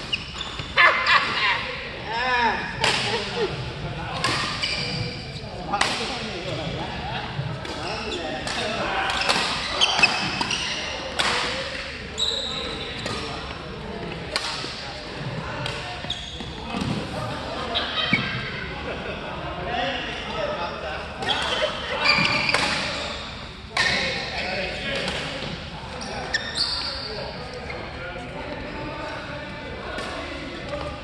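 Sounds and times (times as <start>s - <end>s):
shoes squeaking on floor: 0.0s - 0.8s, 4.3s - 5.7s, 7.8s - 11.1s, 12.1s - 13.7s, 15.8s - 16.8s, 21.2s - 24.5s, 25.9s - 28.6s
rackets hitting shuttlecock: 7.6s - 11.8s, 22.2s - 23.0s.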